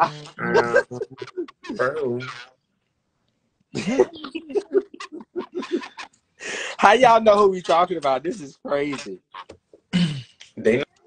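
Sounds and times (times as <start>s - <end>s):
voices over video call: 0.0s - 3.0s, 3.7s - 11.0s.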